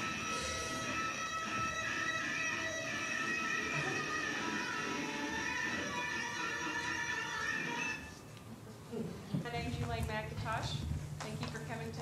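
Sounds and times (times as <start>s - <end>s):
woman speaking over loudspeaker: 9.4s - 12.0s.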